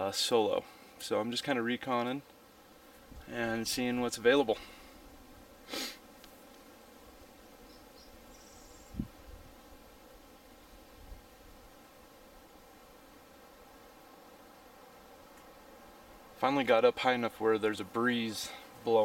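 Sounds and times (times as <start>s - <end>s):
low steady hiss: 0.0s - 19.0s
high insect buzz: 1.7s - 19.0s.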